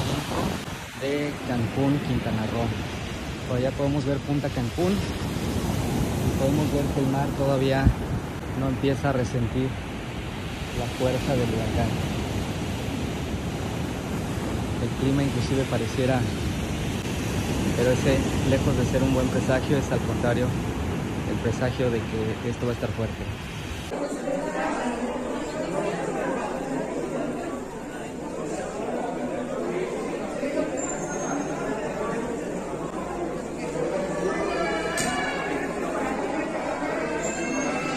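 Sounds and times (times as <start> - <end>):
wind on microphone: 0.0 - 1.9, 4.7 - 8.6
surf breaking on sandy beach: 0.0 - 22.1
crowd chatter: 23.9 - 37.9.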